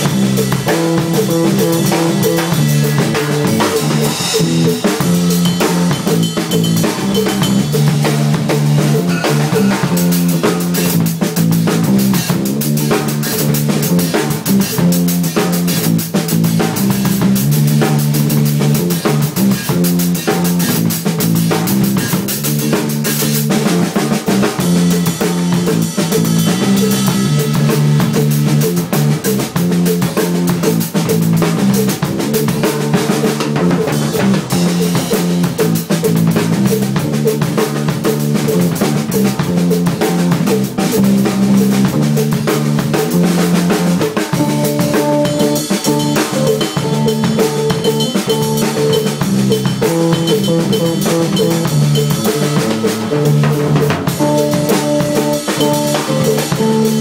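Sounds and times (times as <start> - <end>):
low-pitched guitar riff: 0.0 - 11.0
funk drum kit beat: 0.0 - 57.0.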